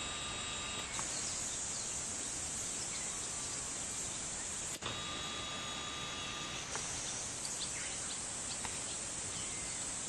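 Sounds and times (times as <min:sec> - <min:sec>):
camcorder zoom motor whine: 0:00.0 - 0:01.6, 0:04.6 - 0:07.5
insect chorus: 0:00.0 - 0:10.0.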